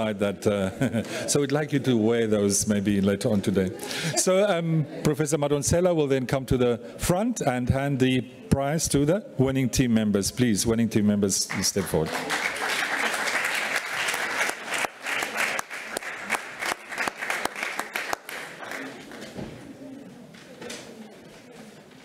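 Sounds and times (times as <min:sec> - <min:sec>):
audience applauding: 0:11.5 - 0:19.4.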